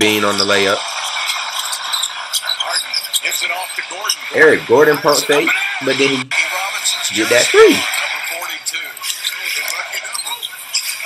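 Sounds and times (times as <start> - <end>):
commentator speaking: 0.0 - 0.8, 2.4 - 10.7
arena crowd noise: 0.0 - 11.0.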